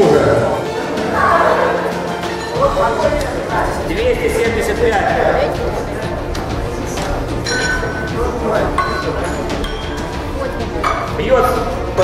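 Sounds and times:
indistinct chatter in a hall: 0.0s - 12.0s.

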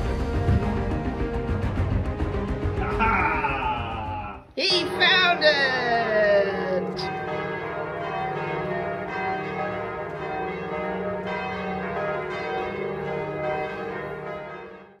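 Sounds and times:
bells ringing: 4.6s - 15.0s.

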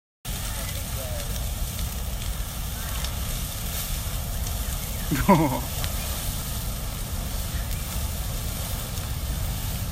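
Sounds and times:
large fire burning: 0.2s - 9.9s.

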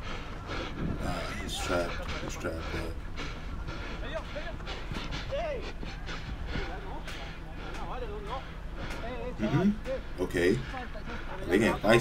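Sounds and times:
players calling out: 0.0s - 12.0s
steady low hum: 0.0s - 12.0s.

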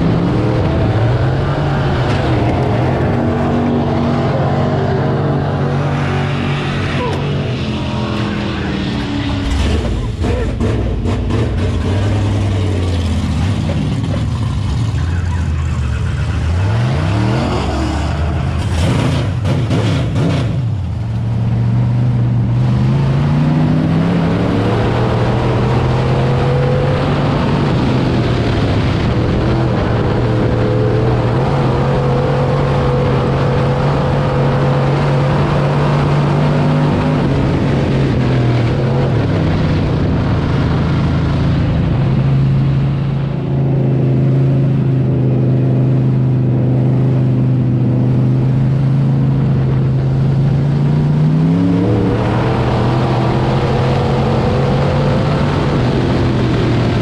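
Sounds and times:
race car engine revving: 0.0s - 57.0s.

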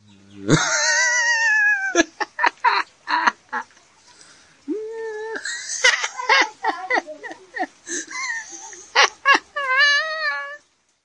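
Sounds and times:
high wavering drawn-out cry: 7.9s - 10.6s.

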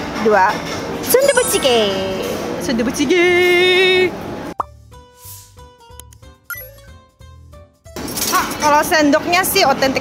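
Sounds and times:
rising bloop sound effect: 1.1s - 2.2s
light plucked background music: 4.6s - 9.0s.

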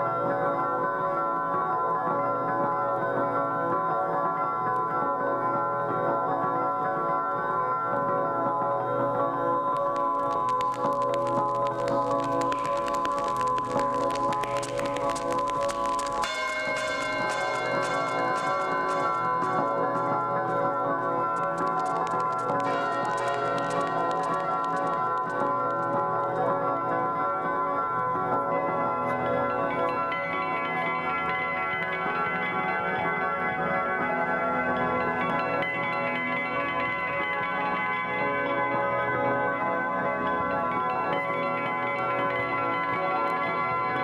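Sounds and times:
slowed steel guitar chiming tones: 0.0s - 44.0s
vinyl crackle: 8.0s - 39.6s, 40.2s - 44.0s.

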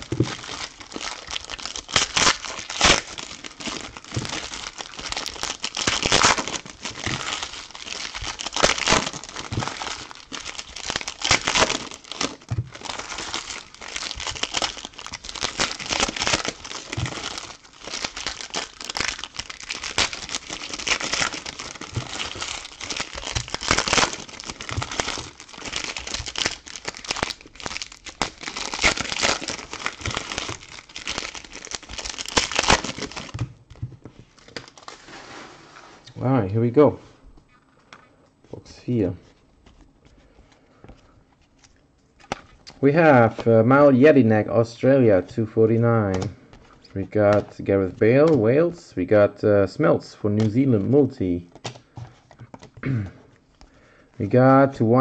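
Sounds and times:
foil wrappers crinkling and tearing: 0.0s - 33.5s, 34.1s - 35.3s.

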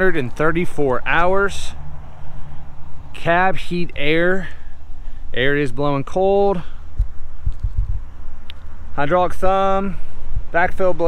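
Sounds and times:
wind buffeting microphone: 6.8s - 11.0s.

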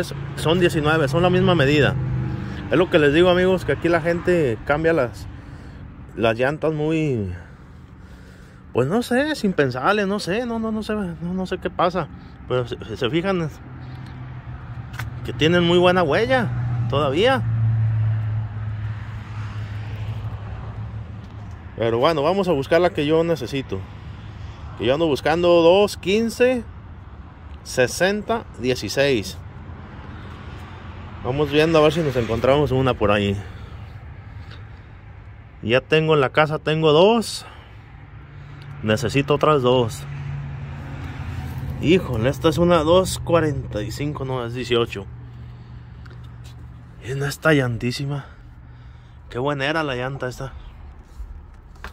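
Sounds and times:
outdoor background noise: 0.0s - 51.9s
low engine hum: 37.4s - 51.9s.

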